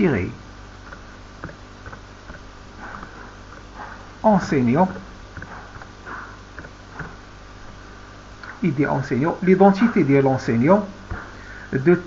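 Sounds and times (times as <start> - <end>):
low electrical hum: 0.0 - 12.0
breath or sniff: 11.3 - 11.7.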